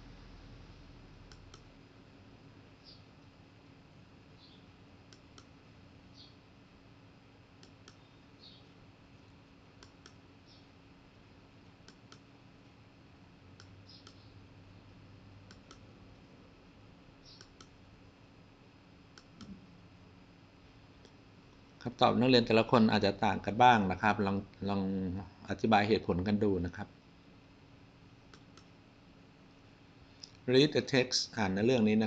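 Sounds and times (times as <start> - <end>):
computer mouse clicks: 1.3 - 1.7, 4.4 - 5.5, 7.6 - 8.6, 9.8 - 10.6, 11.6 - 12.3, 13.6 - 14.3, 15.4 - 15.9, 17.2 - 17.8, 28.3 - 28.7.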